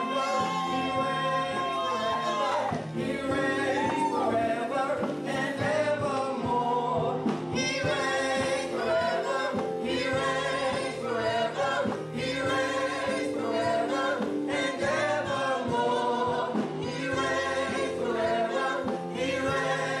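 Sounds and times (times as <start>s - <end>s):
group singing gospel: 0.0s - 20.0s.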